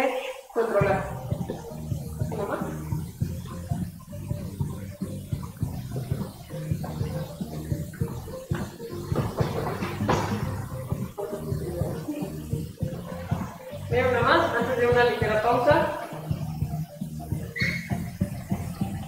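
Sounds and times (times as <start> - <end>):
feet scuffing on foam mat: 8.5 - 10.4.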